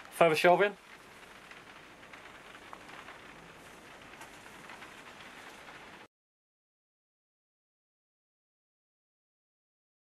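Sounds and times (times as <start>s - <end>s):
faint steady hiss: 0.0s - 6.1s
soft ticks and crackles: 0.0s - 6.1s.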